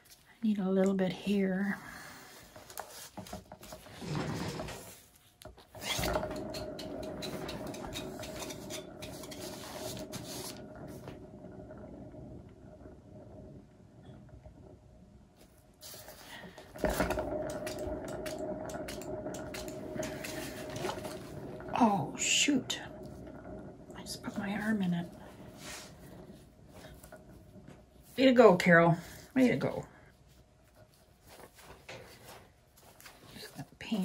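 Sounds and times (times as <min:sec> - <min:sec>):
turntable bearings rumbling: 0:01.0 - 0:30.0.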